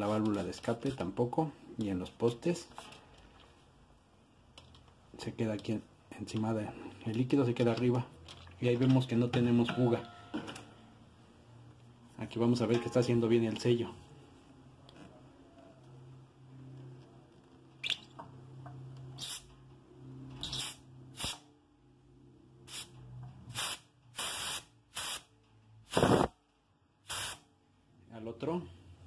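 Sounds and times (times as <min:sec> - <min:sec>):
gas hissing from keg valve: 0:25.9 - 0:26.3, 0:27.1 - 0:27.4.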